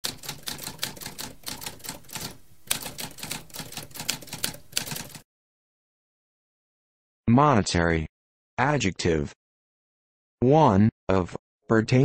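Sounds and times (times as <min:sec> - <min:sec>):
typewriter keys clicking: 0:00.0 - 0:05.2.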